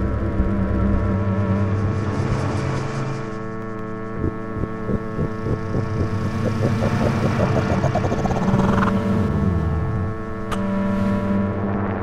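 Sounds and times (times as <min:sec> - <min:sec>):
electronic drone: 0:00.0 - 0:12.0
pulsing electronic beat: 0:03.7 - 0:11.2.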